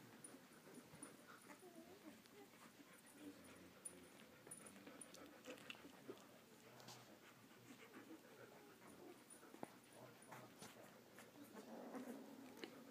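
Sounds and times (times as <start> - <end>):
puppies whimpering and squeaking: 0.0 - 6.0, 7.6 - 12.9.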